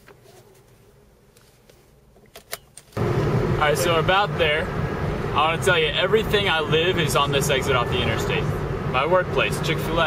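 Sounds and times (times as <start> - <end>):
faint low engine hum: 3.0 - 10.0.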